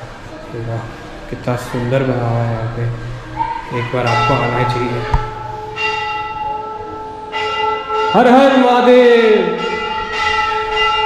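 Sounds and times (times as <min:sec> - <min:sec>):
temple bell clanging: 0:03.8 - 0:11.0.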